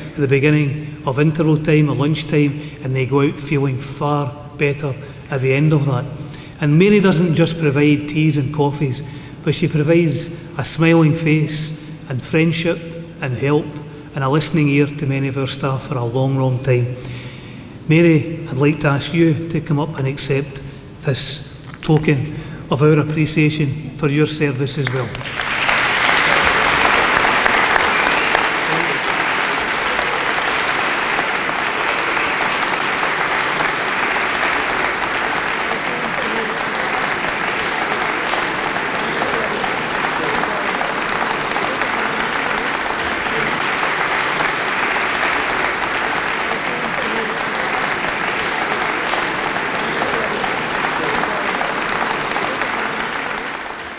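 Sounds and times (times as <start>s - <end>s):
audience applause: 0.0s - 0.3s, 24.9s - 53.9s.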